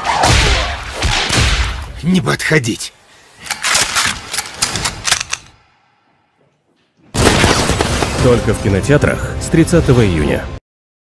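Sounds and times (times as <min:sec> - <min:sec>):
rapid gunshot cracks: 0:07.2 - 0:08.4.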